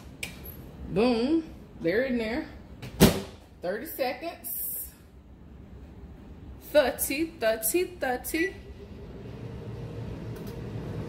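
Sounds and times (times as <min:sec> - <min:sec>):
microwave oven hum and fan: 0:05.7 - 0:11.0.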